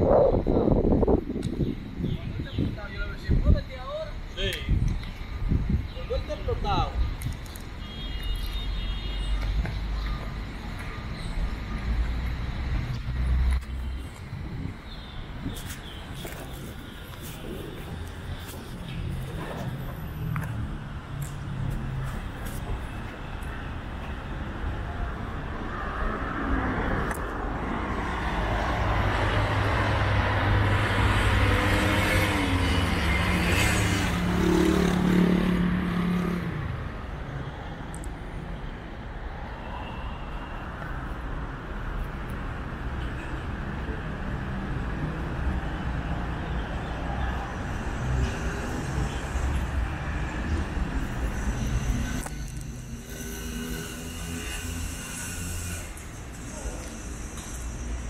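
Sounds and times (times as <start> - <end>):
city traffic noise: 0.0 - 58.0.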